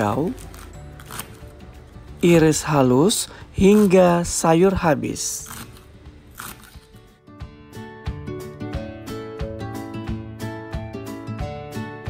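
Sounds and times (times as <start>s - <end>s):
plucked-string background music: 0.0s - 12.0s.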